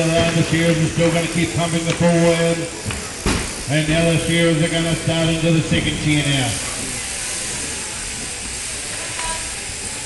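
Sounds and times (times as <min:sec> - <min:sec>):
electric shearing handpieces running: 0:00.0 - 0:10.0.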